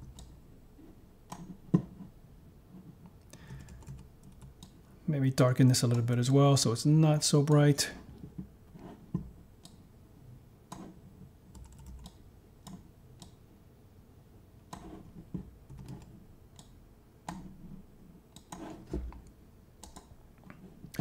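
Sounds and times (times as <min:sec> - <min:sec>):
mouse and keyboard clicks: 0:14.7 - 0:15.1.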